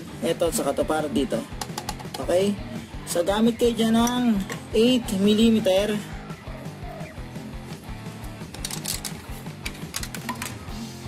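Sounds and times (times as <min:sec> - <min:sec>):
background music with low notes: 0:00.0 - 0:11.0
socket wrench clicking: 0:01.6 - 0:02.2, 0:08.4 - 0:10.6.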